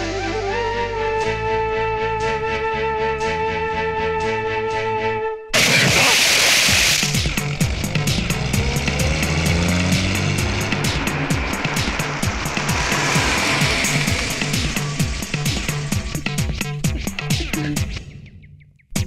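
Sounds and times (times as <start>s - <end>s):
loud crash: 5.6s - 8.4s, 9.8s - 16.7s
fast driving percussion beat: 6.6s - 18.0s
low bass line: 7.1s - 18.0s.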